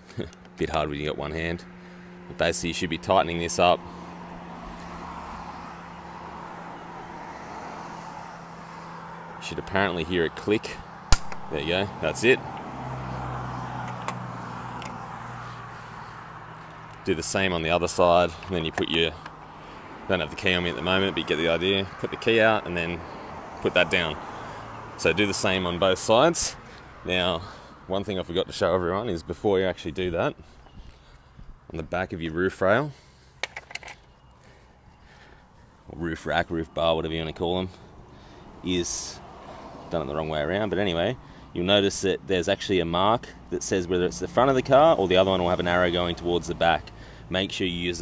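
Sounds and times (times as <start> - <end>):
vehicle engine humming: 0.0 - 48.0.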